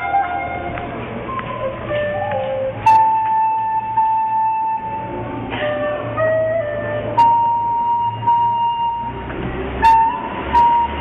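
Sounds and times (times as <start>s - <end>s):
recorder playing long notes: 0.0s - 11.0s.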